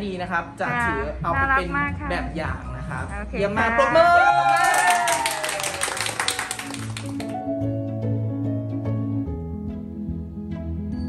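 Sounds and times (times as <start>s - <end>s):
small group clapping: 4.3s - 7.4s
soft music with plucked notes: 6.9s - 11.0s.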